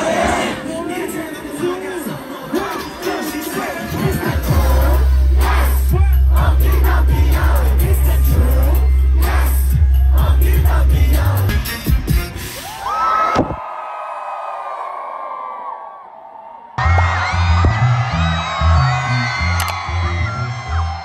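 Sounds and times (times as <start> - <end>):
loud bass-heavy concert music: 0.0 - 13.6, 16.8 - 21.0
crowd whooping and cheering: 12.4 - 21.0.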